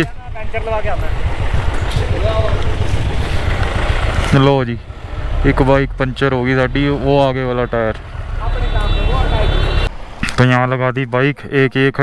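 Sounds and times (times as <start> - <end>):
motorcycle engine rumbling: 0.0 - 10.2.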